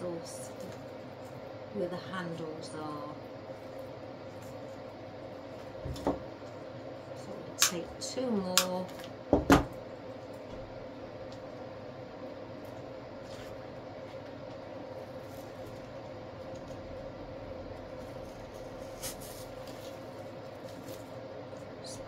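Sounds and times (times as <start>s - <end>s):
artificial flower stems rustling: 0.0s - 9.2s, 12.6s - 16.9s, 17.6s - 22.0s
low room hum: 0.0s - 22.0s.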